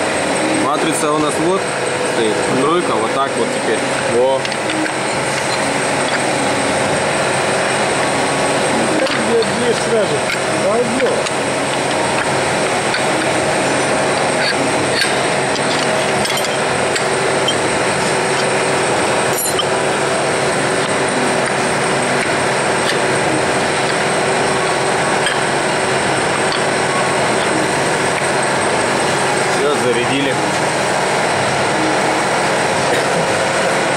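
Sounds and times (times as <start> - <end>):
workshop machinery drone: 0.0 - 33.9.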